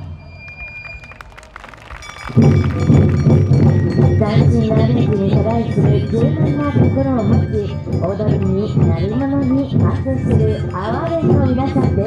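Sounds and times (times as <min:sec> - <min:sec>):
festival drums and band: 0:01.0 - 0:12.0.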